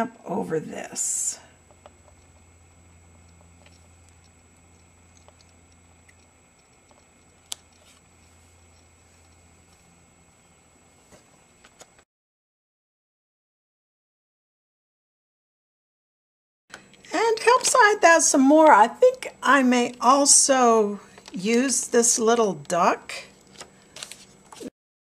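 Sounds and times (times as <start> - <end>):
low electrical hum: 0.0 - 12.0, 16.7 - 24.7.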